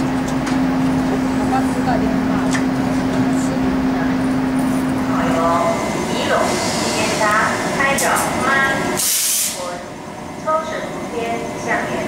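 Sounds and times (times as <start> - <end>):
train moving slowly: 0.0 - 12.0
train air hiss: 8.9 - 9.7.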